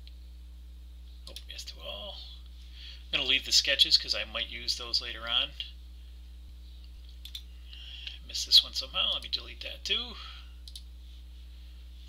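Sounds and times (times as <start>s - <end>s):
low steady hum: 0.0s - 12.0s
computer mouse clicks: 10.6s - 10.9s.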